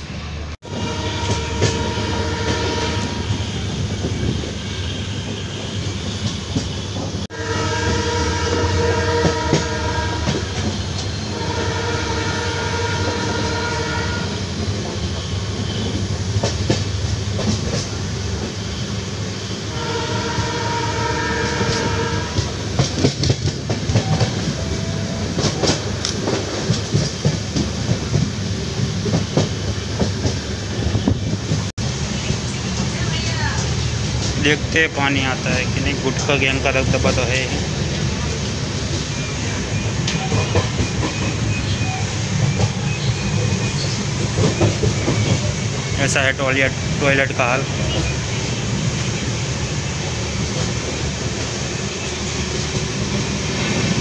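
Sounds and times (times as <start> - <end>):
train wheels rumbling on rail: 0.0 - 54.0
two-tone train horn blasts: 0.6 - 3.7, 6.7 - 14.5, 19.5 - 22.6.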